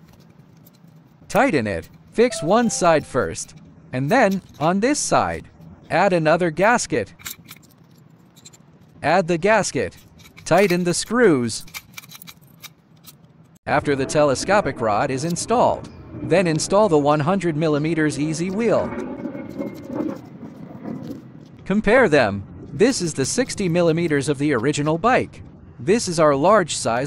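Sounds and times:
small metal parts clicking: 3.5s - 4.7s, 7.2s - 8.7s, 9.9s - 13.6s.

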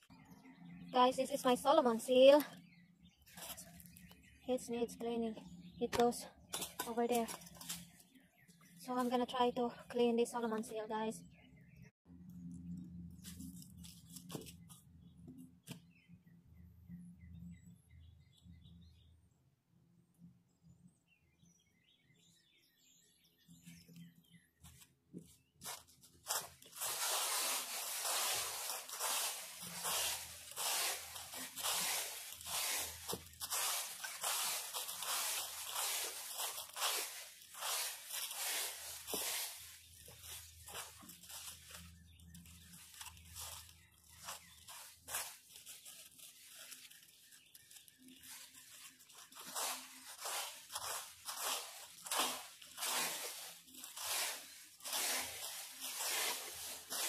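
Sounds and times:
plastic rake crunching dry leaves: 25.6s - 57.0s.

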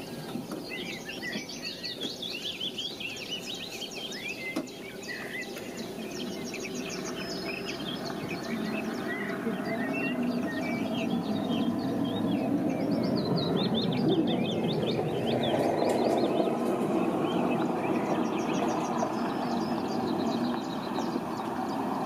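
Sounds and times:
songbirds chirping: 0.0s - 22.0s
steady background noise: 0.0s - 22.0s.

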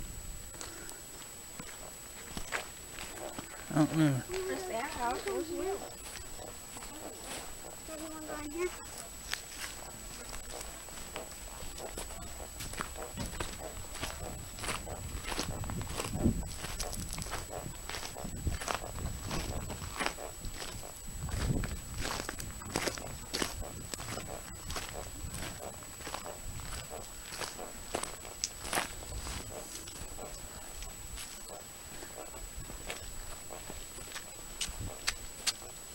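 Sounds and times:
footsteps of people walking: 0.5s - 35.8s.

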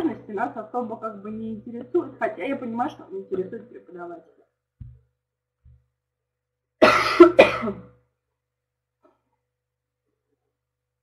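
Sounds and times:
woman coughing: 6.8s - 7.9s.

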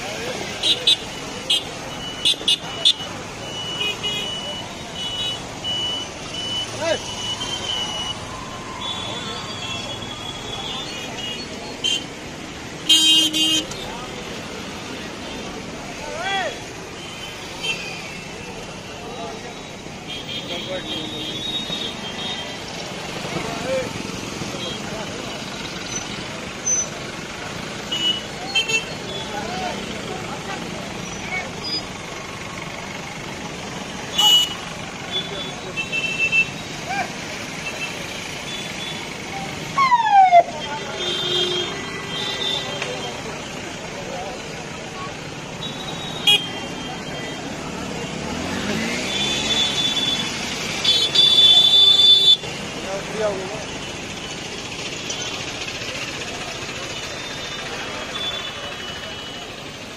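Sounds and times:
people's voices: 0.0s - 51.1s, 52.4s - 59.9s
vehicles passing: 0.0s - 59.9s
car horn honks: 34.1s - 36.5s, 40.6s - 43.1s, 45.6s - 47.3s, 48.3s - 52.4s.

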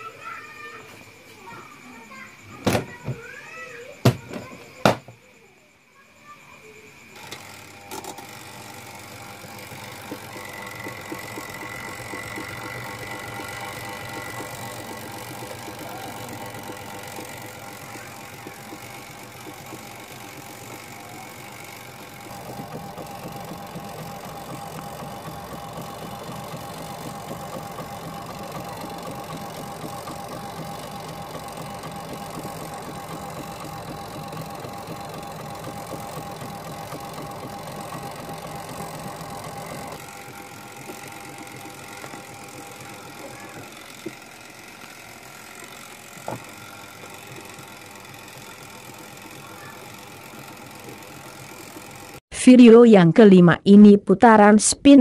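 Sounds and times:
washing machine motor hum: 7.0s - 52.3s.

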